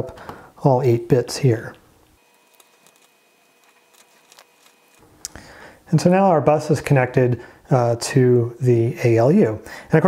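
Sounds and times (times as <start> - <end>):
faint steady whine: 0.0 - 10.0.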